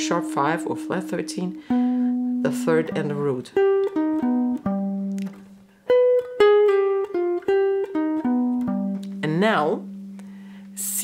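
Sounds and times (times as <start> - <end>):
electric jazz guitar notes: 0.0 - 11.0.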